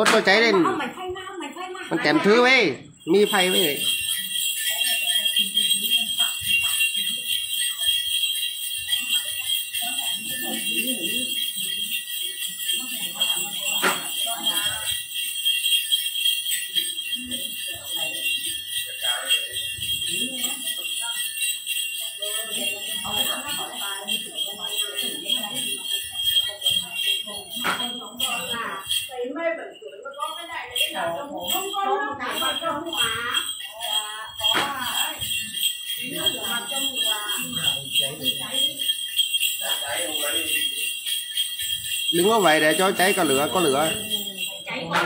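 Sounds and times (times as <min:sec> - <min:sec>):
small metal bells jingling: 0:00.0 - 0:45.0.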